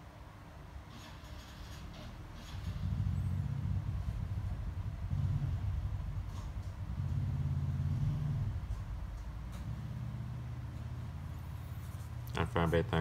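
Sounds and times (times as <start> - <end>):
low engine rumble: 0.9 - 13.0.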